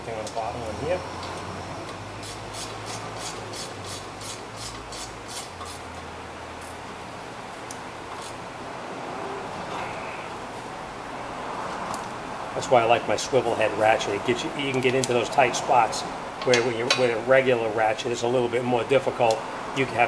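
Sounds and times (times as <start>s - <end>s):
steady hum: 0.0s - 16.5s
ratchet clicking: 2.2s - 5.8s.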